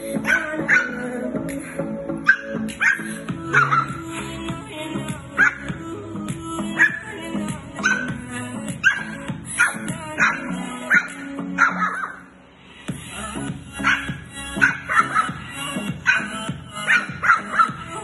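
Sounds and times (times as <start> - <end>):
song from small speaker: 0.0 - 18.0
puppy barking and yapping: 0.3 - 1.0, 2.3 - 3.9, 7.8 - 8.1, 8.8 - 12.2, 13.8 - 15.4, 16.0 - 17.8.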